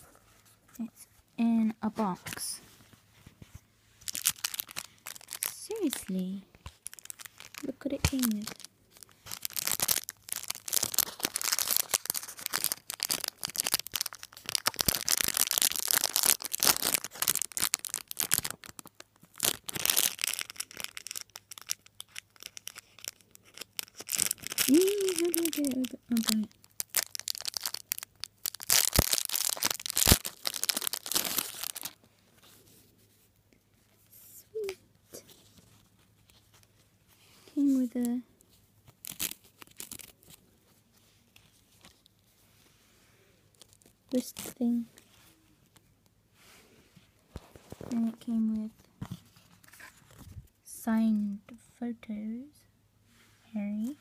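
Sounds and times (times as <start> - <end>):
packaging crinkling and tearing: 4.0 - 32.6, 37.4 - 42.3, 43.5 - 45.9, 47.3 - 50.6.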